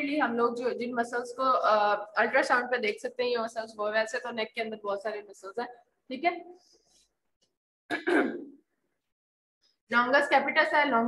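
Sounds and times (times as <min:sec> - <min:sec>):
woman clearing her throat: 0:07.9 - 0:08.6.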